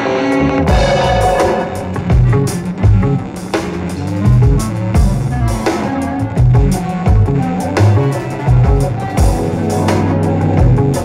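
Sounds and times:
cymbals: 0.0s - 11.0s
jazz band playing: 0.0s - 11.0s.

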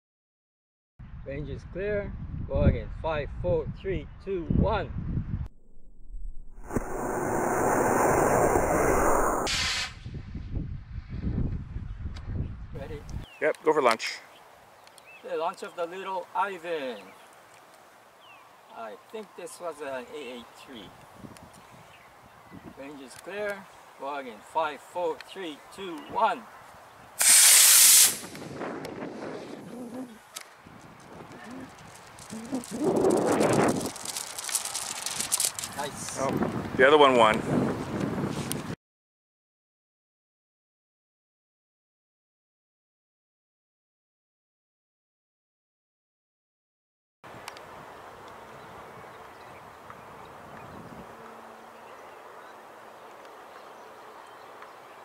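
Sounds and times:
model rocket motor hissing: 27.2s - 28.3s.

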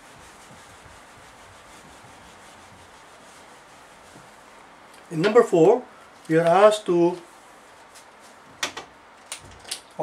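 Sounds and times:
eraser scrubbing whiteboard: 0.0s - 5.5s.

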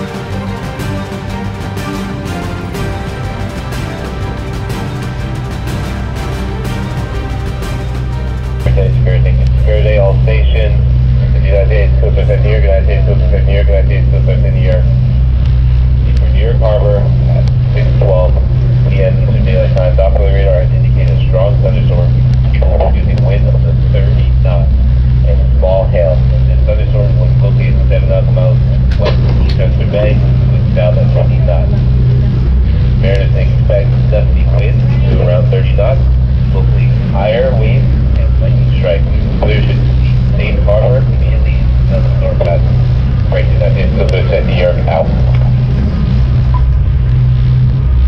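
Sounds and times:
background music: 0.0s - 48.0s
boat engine droning: 0.0s - 48.0s
indistinct voice-like sounds: 8.6s - 15.0s, 16.0s - 46.2s.

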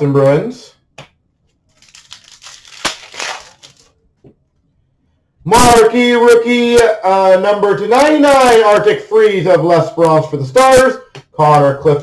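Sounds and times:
cards and wrappers rustling: 1.7s - 4.0s.

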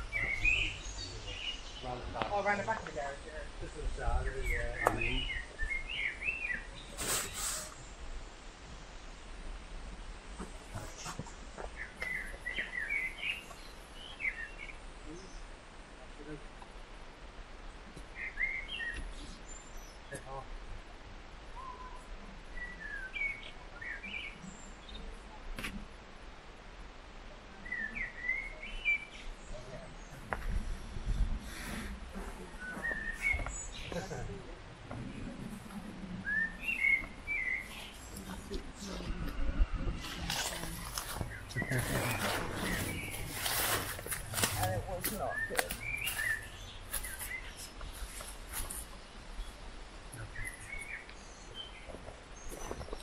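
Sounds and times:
songbird chirping: 0.0s - 53.0s.

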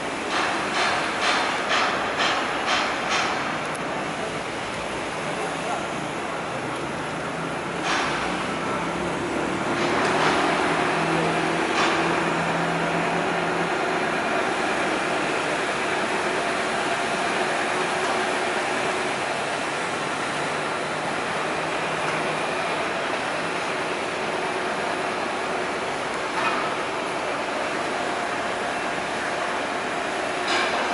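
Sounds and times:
engines and machinery humming: 0.0s - 30.9s.

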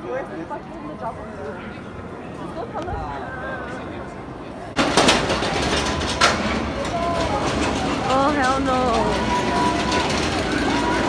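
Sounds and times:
roller coaster train rushing on track: 4.7s - 11.0s.

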